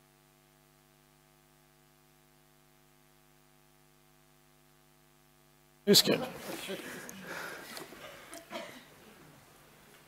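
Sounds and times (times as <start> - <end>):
faint electrical mains hum: 0.0 - 10.0
man speaking: 5.8 - 7.1.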